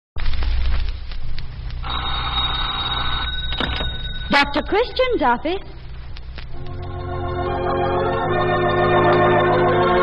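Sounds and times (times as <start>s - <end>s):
telephone bell ringing: 1.8s - 5.2s.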